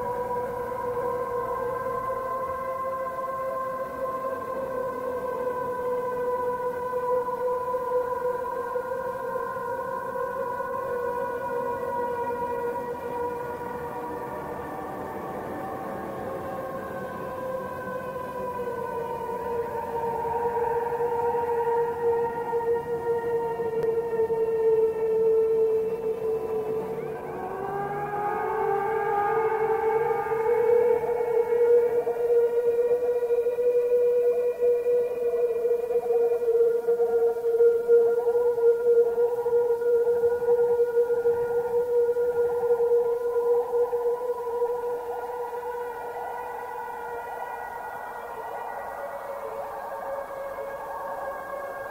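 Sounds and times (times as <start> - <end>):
ambient drone tone: 0.0 - 51.9.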